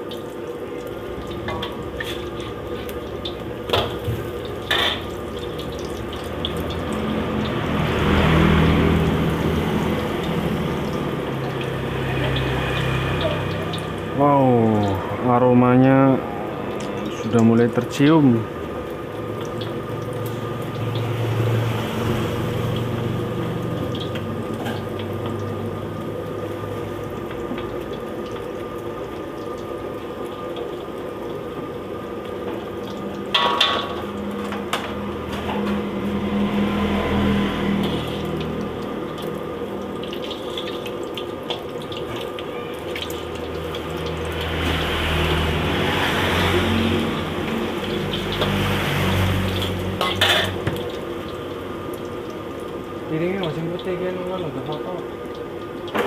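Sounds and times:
egg deep-frying in oil: 0.0 - 56.0
metal utensil clanking on wok: 4.6 - 5.2, 49.6 - 50.7.

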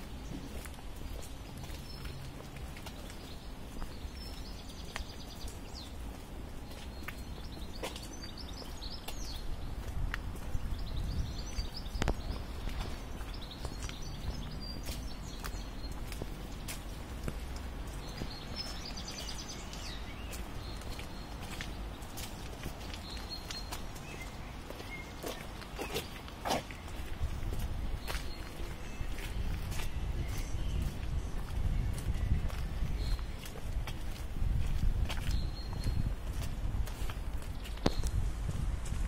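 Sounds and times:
small birds chirping: 0.0 - 38.3
footsteps on wet pavement: 0.0 - 39.0.

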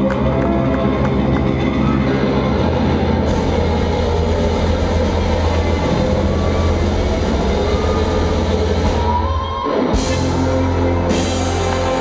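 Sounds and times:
heavy bass hum: 0.0 - 12.0
live rock band playing: 0.0 - 12.0.

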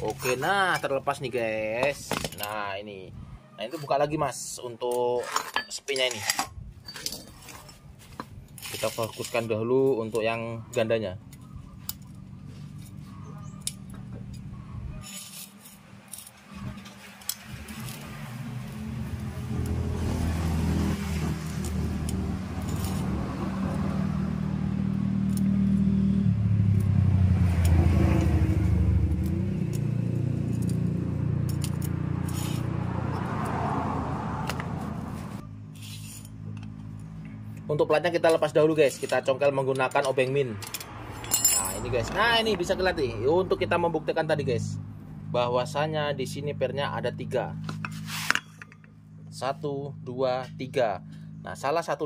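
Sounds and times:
engine running: 11.2 - 37.7
light metallic clinks and taps: 40.0 - 42.2.

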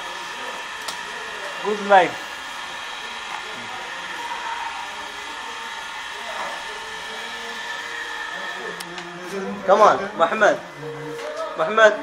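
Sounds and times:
electric motor whirring: 0.0 - 12.0
faint voices: 0.0 - 12.0.

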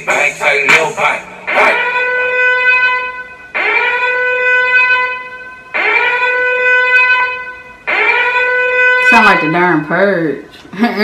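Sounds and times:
siren-like horn blasts: 1.3 - 10.6.

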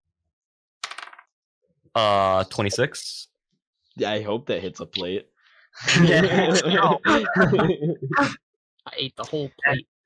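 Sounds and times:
dice clattering on table: 0.8 - 1.3.

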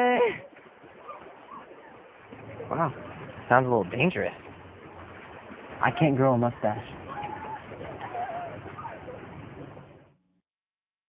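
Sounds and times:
bird calling: 1.0 - 2.1, 7.0 - 9.3.

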